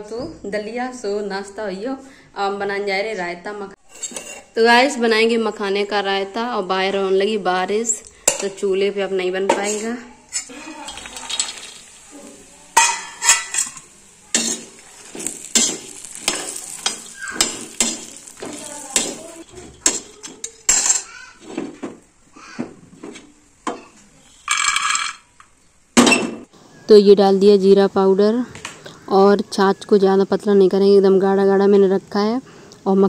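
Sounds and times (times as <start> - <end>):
faint sizzle: 0.6 - 33.0
spoon scraping on iron pan: 3.8 - 4.6, 9.5 - 21.8.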